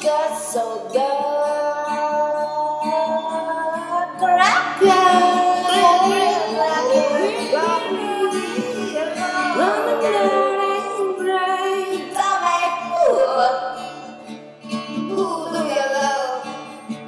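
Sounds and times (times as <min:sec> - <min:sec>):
woman singing wordless vocals: 0:00.0 - 0:14.1, 0:14.9 - 0:16.7
accompanying instrument: 0:04.6 - 0:12.9.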